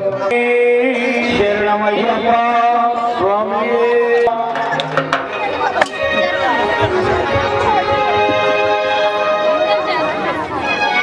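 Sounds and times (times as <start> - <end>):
devotional chanting: 0.0 - 5.2
sharp knocks: 4.5 - 6.0.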